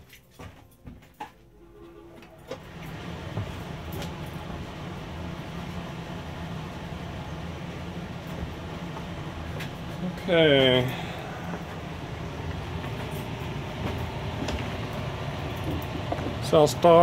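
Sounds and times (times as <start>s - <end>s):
exhaust fan running: 1.4s - 17.0s.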